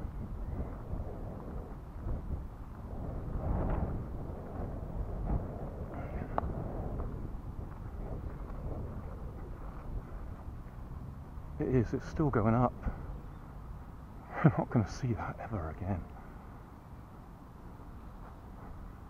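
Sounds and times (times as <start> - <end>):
wind buffeting microphone: 0.0 - 19.0.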